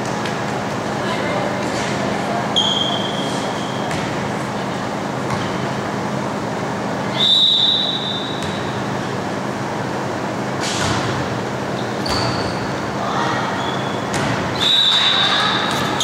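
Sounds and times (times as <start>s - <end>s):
gym crowd noise: 0.0s - 16.0s
referee's whistle blasts: 7.1s - 8.5s, 14.6s - 15.3s.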